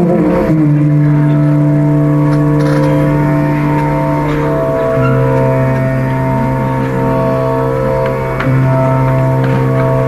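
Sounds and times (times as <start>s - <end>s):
electric mandolin long note: 0.0s - 10.0s.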